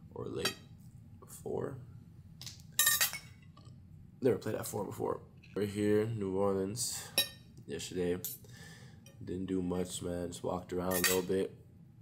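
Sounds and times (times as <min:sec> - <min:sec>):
tableware clinking: 0:02.8 - 0:03.5, 0:10.9 - 0:11.3.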